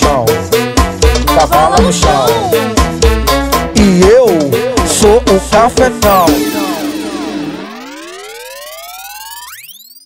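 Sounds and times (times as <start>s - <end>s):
synthesized rising pitch sweep: 5.5s - 10.0s.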